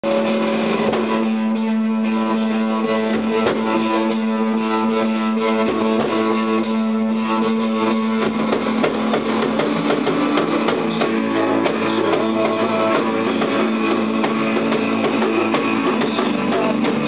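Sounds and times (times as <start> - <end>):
rock band playing: 0.0 - 17.0
sharp percussive hits: 7.5 - 17.0.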